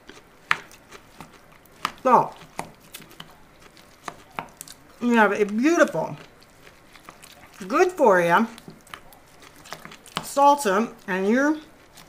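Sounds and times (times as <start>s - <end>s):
spatula stirring salsa: 0.0s - 12.0s.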